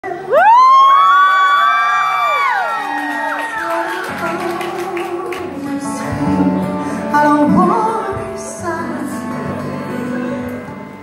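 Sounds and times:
audience screaming and whooping: 0:00.2 - 0:05.3.

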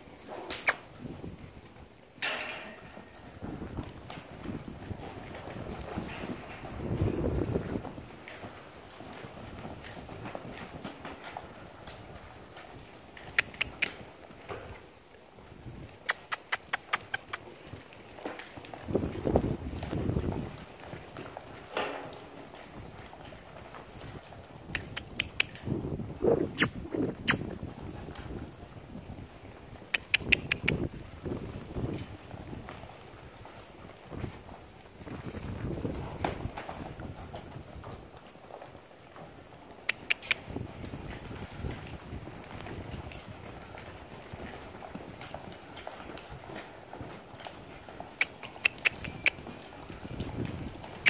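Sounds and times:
horse hoofbeats on sand: 0:00.0 - 0:51.0.

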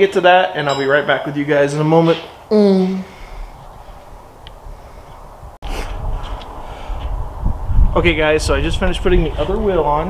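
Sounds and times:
wind rumble: 0:03.1 - 0:10.0.

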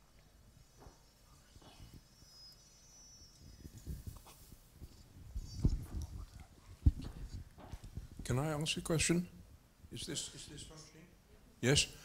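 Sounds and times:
microphone handling rustles: 0:03.4 - 0:08.4
microphone thud: 0:06.8 - 0:08.4.

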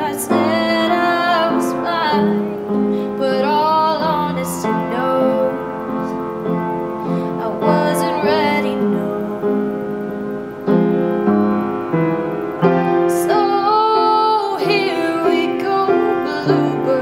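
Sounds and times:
woman singing: 0:00.0 - 0:06.2, 0:07.2 - 0:10.0, 0:13.1 - 0:17.0
piano chords: 0:00.0 - 0:17.0.

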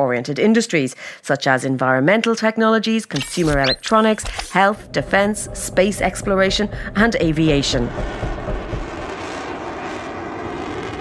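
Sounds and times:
steady rushing drone: 0:04.0 - 0:11.0.

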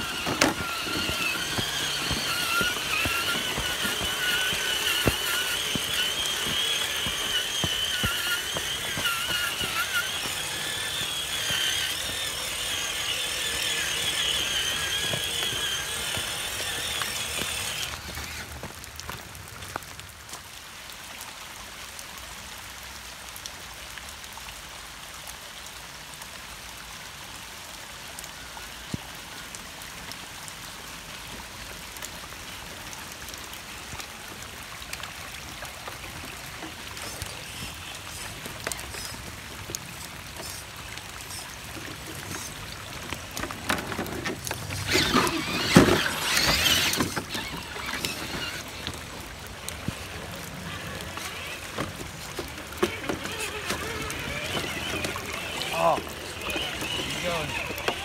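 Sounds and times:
electric motor whine: 0:00.0 - 0:18.7, 0:39.9 - 0:58.0
running rainwater: 0:00.0 - 0:58.0.

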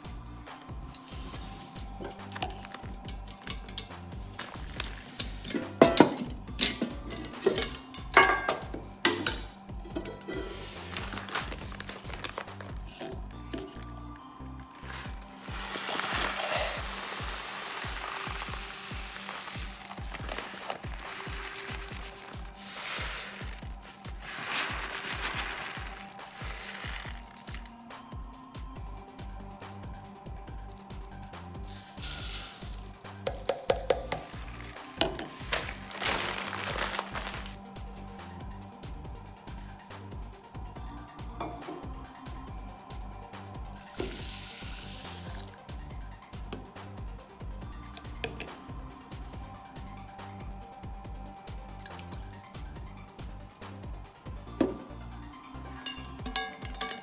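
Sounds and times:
background music with a beat: 0:00.0 - 0:57.0
rice pouring into a metal pot: 0:14.9 - 0:27.7, 0:31.6 - 0:37.5, 0:43.8 - 0:45.6.

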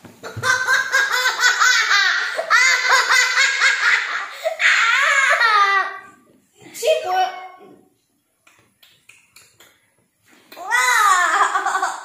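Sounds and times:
children laughing hard: 0:00.2 - 0:06.2, 0:10.7 - 0:12.0.

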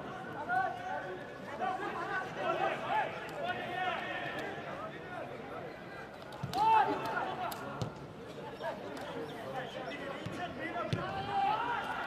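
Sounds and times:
players shouting calls: 0:09.6 - 0:12.0.

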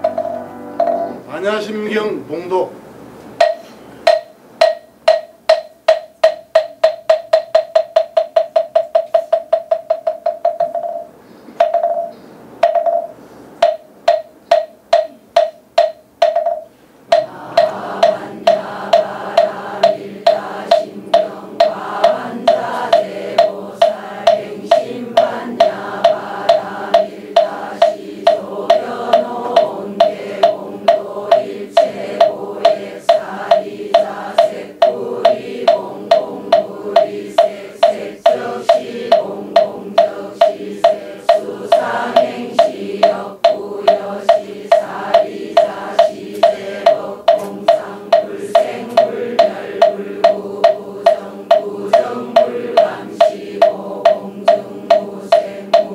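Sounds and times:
wooden fish drum strokes: 0:00.0 - 0:02.6, 0:03.2 - 0:55.9
congregation chanting in unison: 0:17.1 - 0:55.9.

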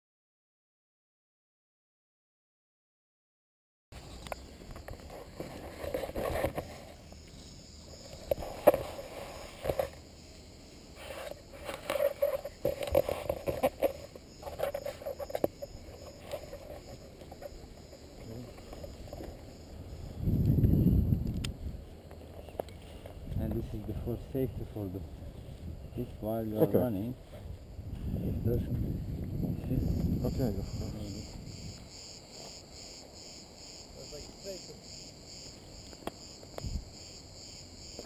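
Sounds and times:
wind rushing on microphone: 0:18.9 - 0:22.0, 0:23.1 - 0:32.0, 0:36.6 - 0:37.0.

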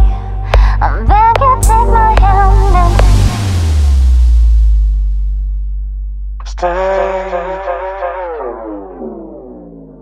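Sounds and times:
trip-hop music: 0:00.0 - 0:10.0
deep sub-bass note: 0:01.1 - 0:10.0.

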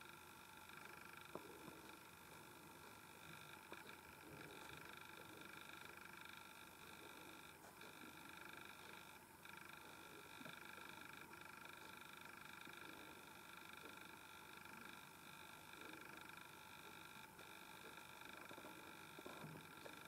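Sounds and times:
faint high-pitched whine: 0:00.0 - 0:20.0.

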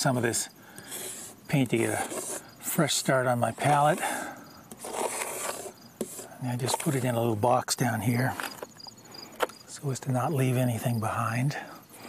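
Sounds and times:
paint scraped off palette: 0:00.9 - 0:02.5, 0:03.4 - 0:07.2.

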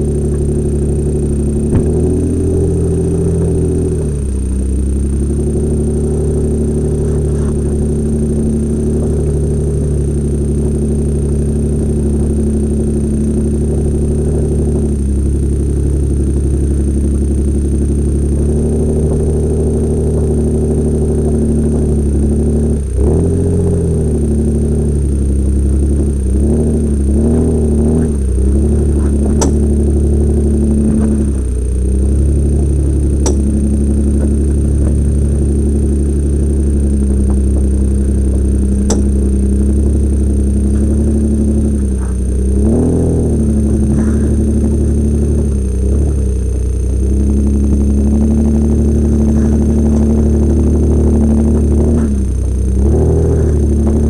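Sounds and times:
engine running at low speed: 0:00.0 - 0:54.0
high electronic whine: 0:00.0 - 0:54.0.

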